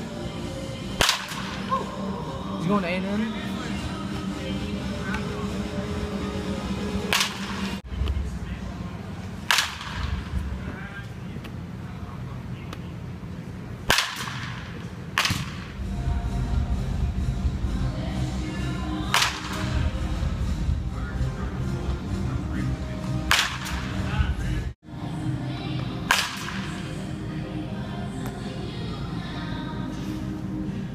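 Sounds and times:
bat cracking against ball: 1.0s - 1.6s, 7.1s - 7.8s, 9.4s - 10.3s, 13.8s - 15.7s, 19.1s - 19.7s, 23.3s - 23.9s, 26.1s - 26.8s.

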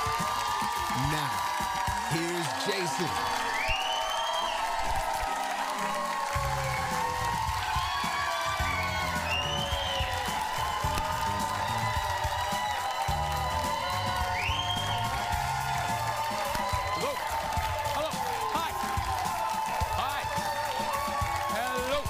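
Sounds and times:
audience cheering and applauding: 0.0s - 22.0s
upbeat theme music: 0.0s - 22.0s.

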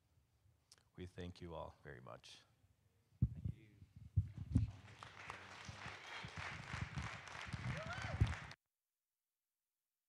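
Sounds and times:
audience applauding: 4.7s - 8.6s.

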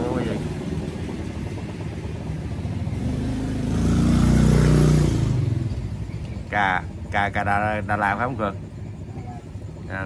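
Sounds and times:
vehicle engine passing: 0.0s - 9.7s
low background rumble: 0.0s - 10.0s.

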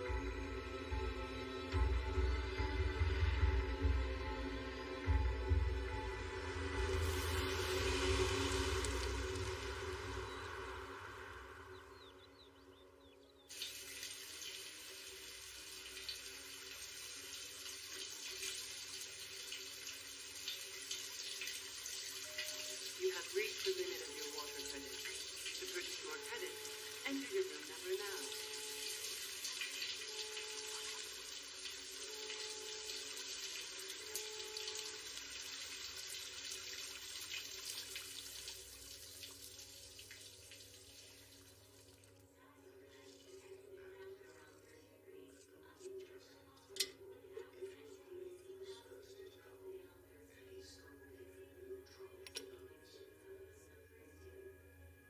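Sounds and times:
film score music: 0.0s - 13.5s, 22.0s - 35.4s
shower running: 5.0s - 12.1s, 13.5s - 42.2s, 42.8s - 44.8s.

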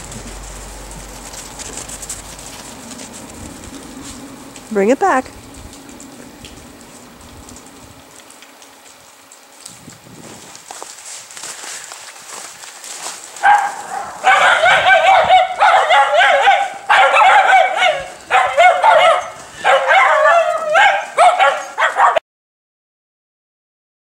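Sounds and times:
dog whining and yipping: 13.5s - 22.2s.

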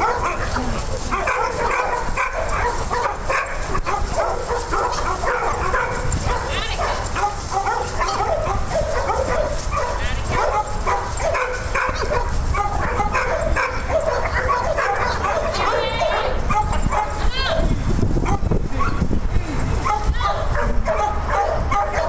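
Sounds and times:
many dogs barking: 0.0s - 19.1s, 19.7s - 22.0s.

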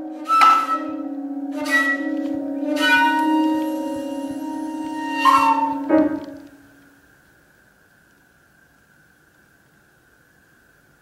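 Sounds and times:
bamboo flute holding low note: 0.0s - 7.0s
piano notes ringing: 0.0s - 7.0s.

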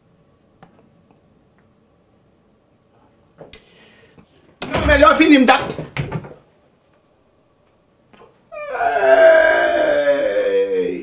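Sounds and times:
man wailing: 8.6s - 11.0s.

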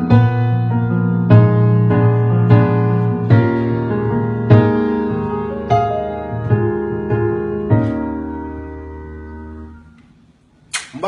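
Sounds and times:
held piano chord: 0.0s - 10.1s.

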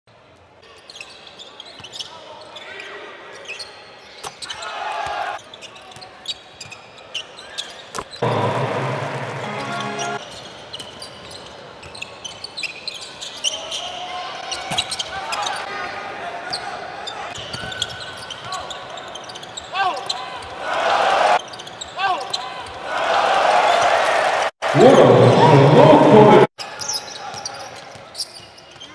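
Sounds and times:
sneakers squeaking: 0.8s - 2.6s, 5.4s - 15.7s, 16.4s - 20.4s, 21.4s - 22.8s, 26.6s - 28.9s.

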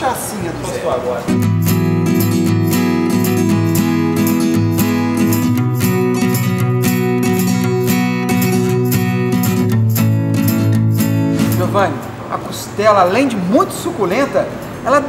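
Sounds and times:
acoustic guitar strumming: 1.2s - 15.0s.

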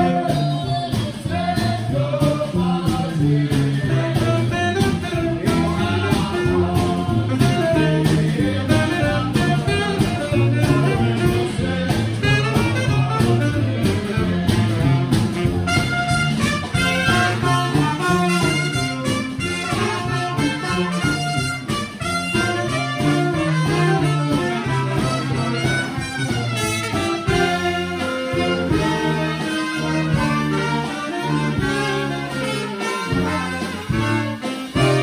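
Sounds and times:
brass band playing: 0.0s - 35.0s
drums: 0.0s - 35.0s.

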